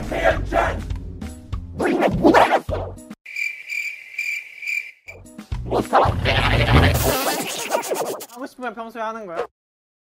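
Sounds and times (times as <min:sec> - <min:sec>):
cricket chirping sound effect: 0:03.3 - 0:05.2
person speaking: 0:06.2 - 0:09.5.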